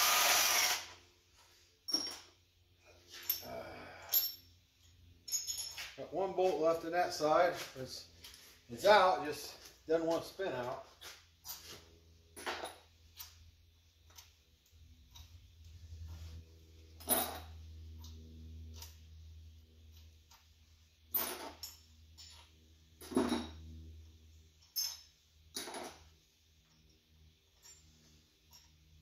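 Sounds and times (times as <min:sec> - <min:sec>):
low steady hum: 0:00.5 - 0:29.0.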